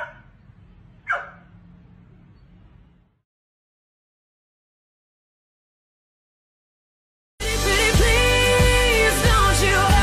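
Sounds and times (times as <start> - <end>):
dog barking: 0.0 - 0.3, 1.0 - 1.5.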